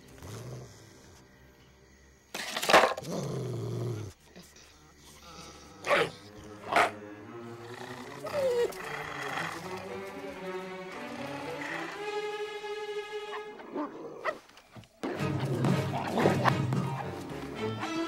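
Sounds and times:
dog snarling and growling: 0:00.0 - 0:01.3, 0:02.4 - 0:12.1, 0:13.4 - 0:17.2
dog barking: 0:05.8 - 0:07.0.

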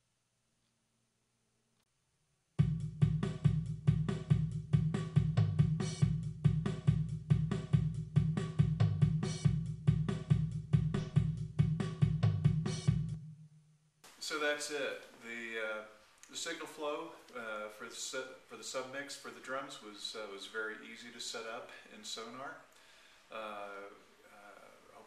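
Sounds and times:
drum kit beat through speakers: 0:02.6 - 0:13.3.

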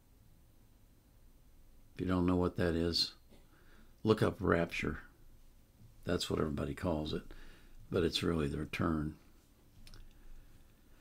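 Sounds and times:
man speaking: 0:02.0 - 0:03.3, 0:04.0 - 0:05.2, 0:06.0 - 0:09.3
faint click: 0:09.8 - 0:10.2.

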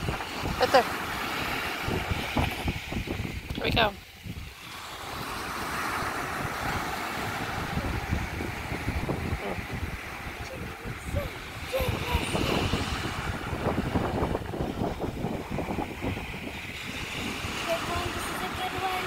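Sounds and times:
ocean surf: 0:00.0 - 0:19.0
wind buffeting microphone: 0:00.0 - 0:19.0.

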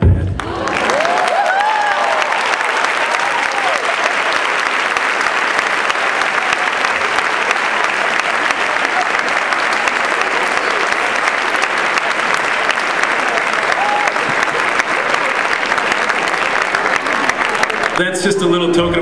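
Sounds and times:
audience applauding: 0:00.0 - 0:19.0.

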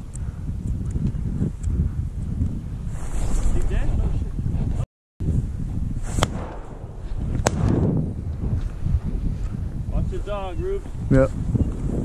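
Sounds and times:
wind on microphone: 0:00.0 - 0:12.0
sharp cracks: 0:06.1 - 0:08.0.

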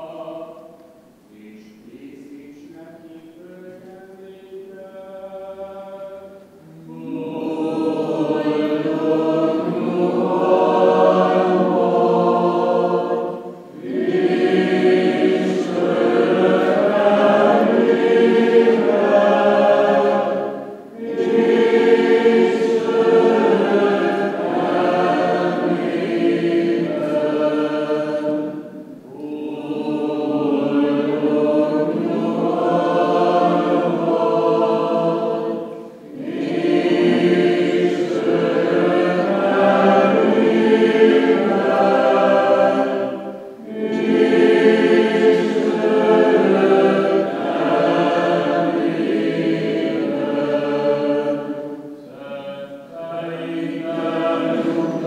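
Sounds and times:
choir chanting unaccompanied: 0:00.0 - 0:55.0.

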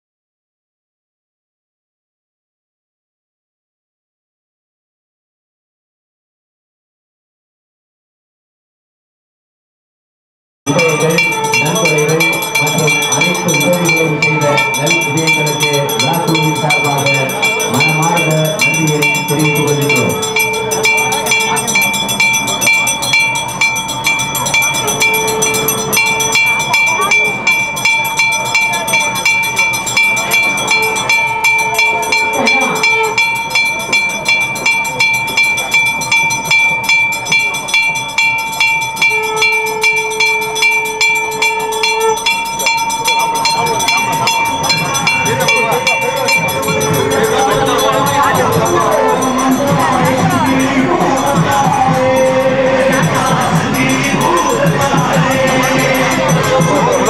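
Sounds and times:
long steady tone: 0:10.7 - 0:57.0
temple bells ringing: 0:10.7 - 0:57.0.

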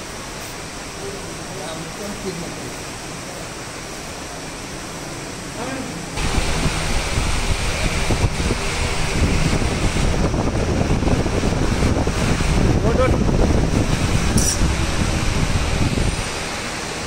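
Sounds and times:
rumbling noise on microphone: 0:06.2 - 0:16.6.

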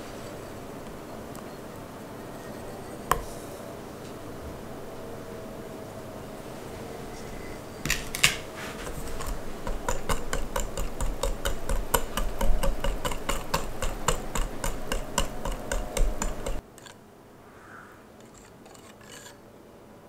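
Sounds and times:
whisk clicking against glass bowl: 0:08.8 - 0:16.6.

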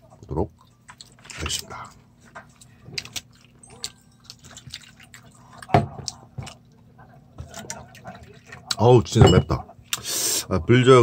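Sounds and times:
wet chewing: 0:00.5 - 0:08.8.

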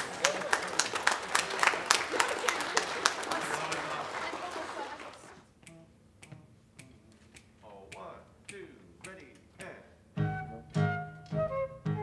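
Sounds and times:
count-off clicks: 0:05.6 - 0:09.8.

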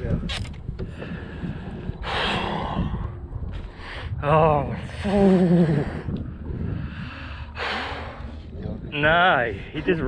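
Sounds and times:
wind rumble on microphone: 0:00.0 - 0:10.0.

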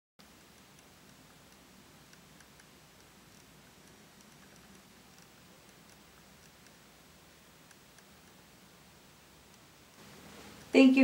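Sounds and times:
faint irregular ticks: 0:00.2 - 0:08.5, 0:09.4 - 0:09.7
faint room hiss: 0:00.2 - 0:11.0.

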